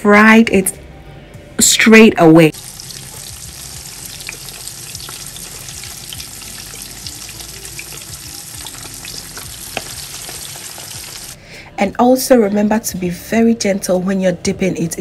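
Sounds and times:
chicken deep-frying in oil: 2.5s - 11.4s
oil popping: 2.5s - 11.4s.

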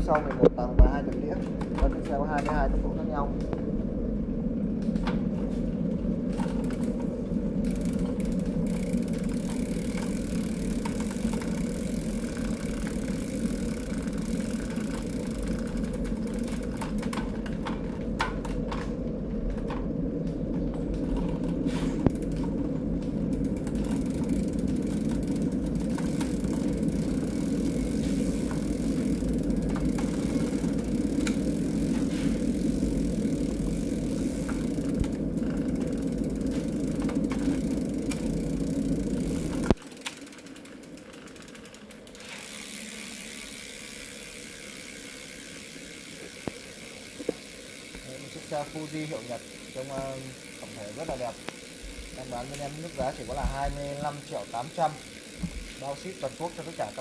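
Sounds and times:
bike chain whirring: 0.0s - 57.0s
faint bike drivetrain clicks: 0.0s - 57.0s.

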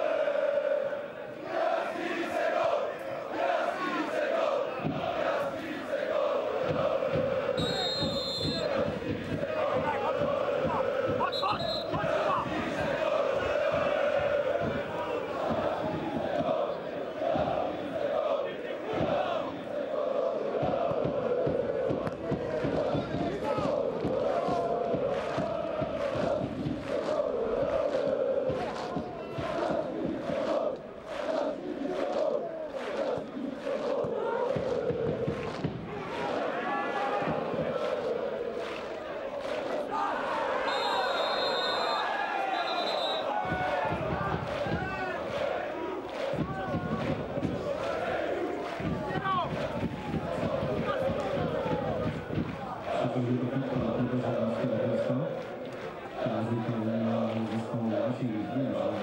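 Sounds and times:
crowd chanting: 0.0s - 59.0s
short high whistles: 40.7s - 43.3s.

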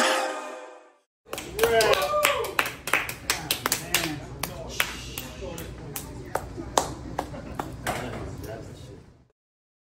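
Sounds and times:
people clapping: 1.3s - 8.1s.

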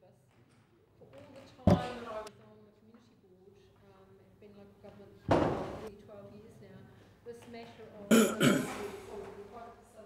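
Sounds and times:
person clearing throat: 1.7s - 2.0s, 8.1s - 8.9s.

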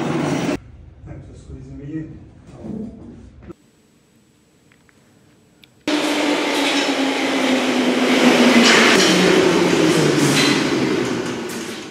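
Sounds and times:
train motor whine: 5.9s - 11.9s
train wheel and air rush: 5.9s - 11.9s.

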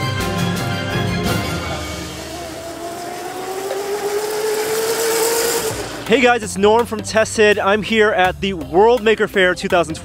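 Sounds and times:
toy car electric motor whining: 1.8s - 6.1s.

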